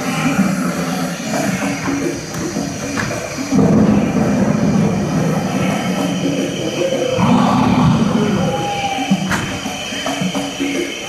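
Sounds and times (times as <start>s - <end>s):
loud low rumble over speakers: 0.3s - 10.0s.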